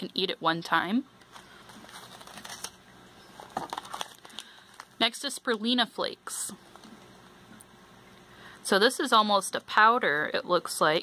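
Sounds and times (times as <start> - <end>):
plastic pouches crinkling: 1.2 - 5.6.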